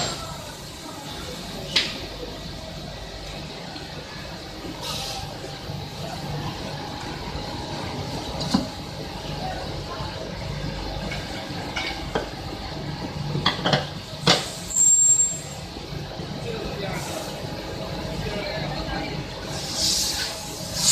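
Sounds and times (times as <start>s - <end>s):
factory machinery hum: 0.0s - 20.9s.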